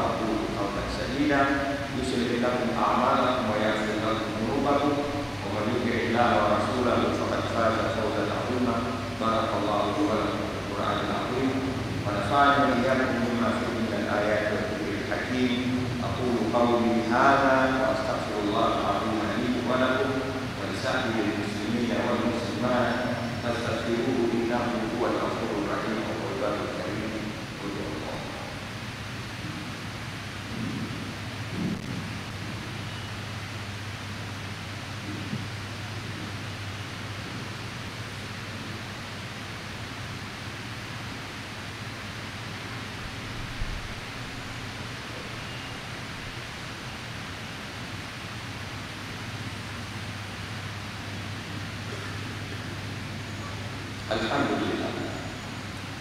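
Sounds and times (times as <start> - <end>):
constant low hum: 0.0 - 56.0
steady hiss: 0.0 - 56.0.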